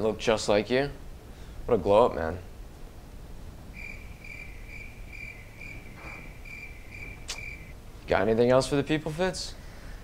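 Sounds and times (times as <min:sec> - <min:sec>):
cricket chirping: 0:03.7 - 0:07.8
sharp click: 0:07.2 - 0:07.5.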